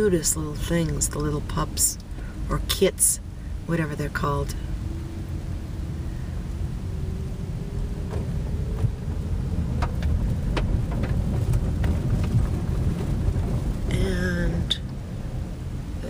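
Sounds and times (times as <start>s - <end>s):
car road rumble: 0.0s - 16.0s
faint engine hum: 0.0s - 16.0s.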